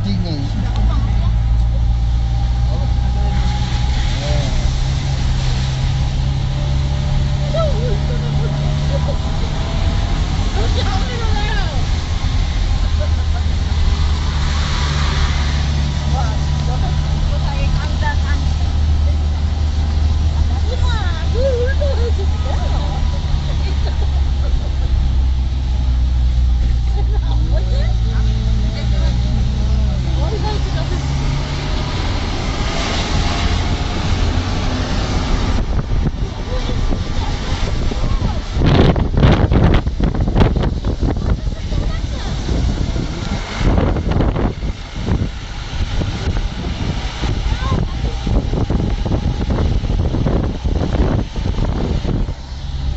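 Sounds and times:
vehicle engine and road noise: 0.0s - 52.9s.

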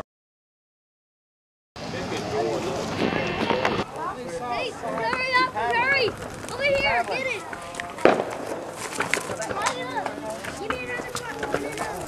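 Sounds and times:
fireworks popping and crackling: 1.8s - 12.0s
fireworks bang: 2.1s - 3.9s, 7.9s - 10.8s.

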